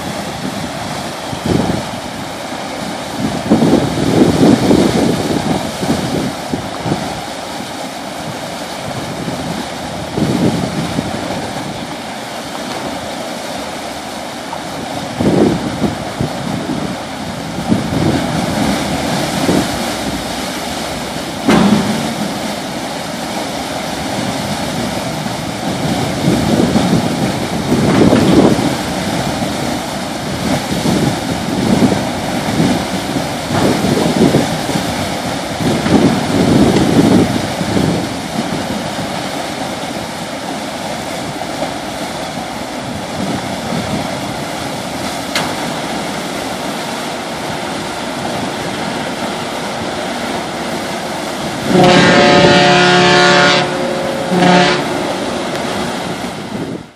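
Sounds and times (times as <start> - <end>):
rushing churned water: 0.0 - 56.9
ship's horn blast: 17.7 - 29.8, 50.2 - 56.9.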